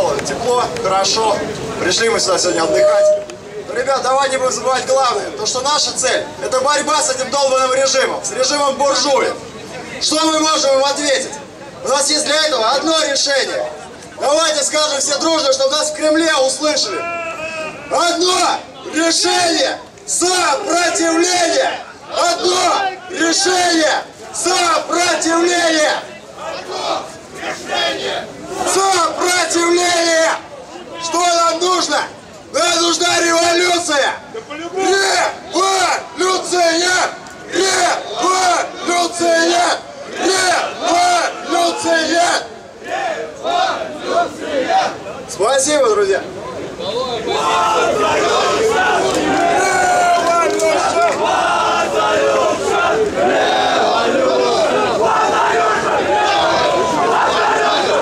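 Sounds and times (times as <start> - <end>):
large crowd shouting: 0.0 - 58.0
crowd chanting in unison: 20.5 - 29.3, 36.7 - 45.1, 47.3 - 58.0.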